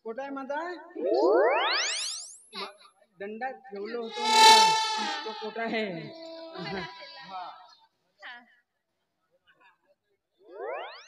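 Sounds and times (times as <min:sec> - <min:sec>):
comic rising tone sweep: 0:04.1 - 0:07.2.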